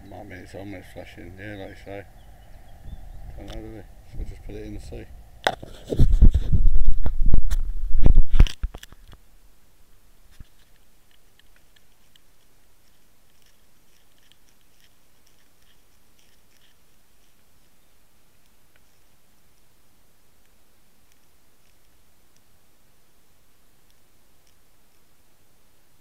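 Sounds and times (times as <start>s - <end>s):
low hiss: 0.0s - 26.0s
bumping against camera housing: 5.4s - 9.2s.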